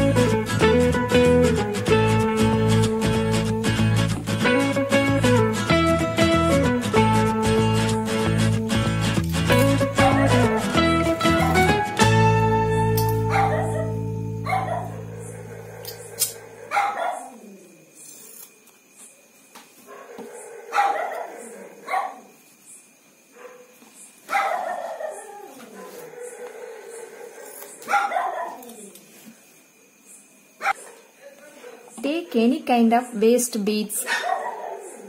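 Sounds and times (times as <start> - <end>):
acoustic guitar music: 0.0 - 16.3
dog barking: 10.0 - 10.7, 13.2 - 17.4, 19.9 - 22.3, 23.3 - 28.7, 30.6 - 31.9, 34.0 - 35.0.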